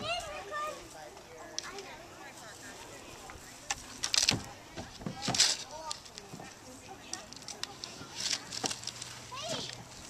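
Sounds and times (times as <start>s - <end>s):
wood chips rustling in plastic buckets: 3.8s - 10.0s.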